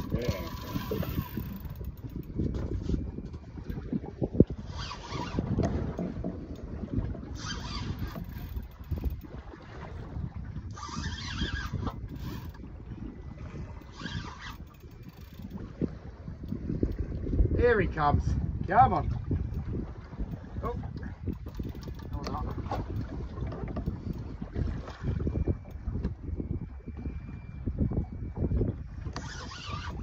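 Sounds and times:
water washing against boat hull: 0.0 - 17.6, 18.4 - 27.0
wind buffeting microphone: 0.0 - 30.0.

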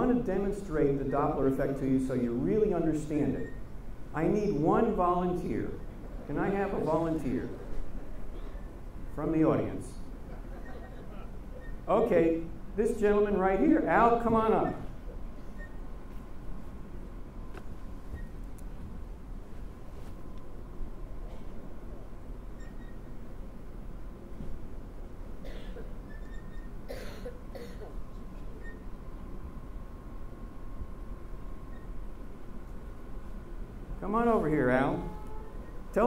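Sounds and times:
steady low hum: 0.0 - 36.0
person coughing: 25.4 - 25.9, 26.9 - 28.0
faint steady tone: 34.6 - 36.0.

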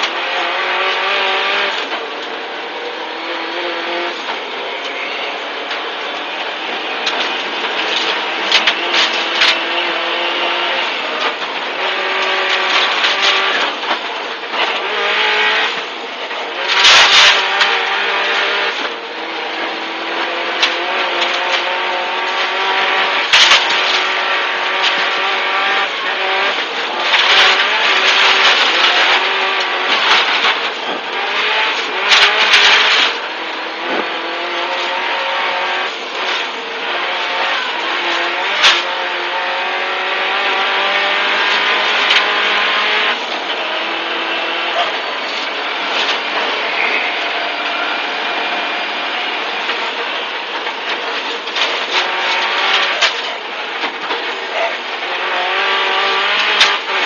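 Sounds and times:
rally car engine revving: 0.0 - 57.0.

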